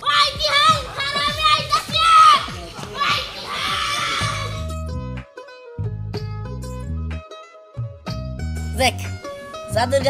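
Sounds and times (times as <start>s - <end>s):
children shouting: 0.0s - 4.7s.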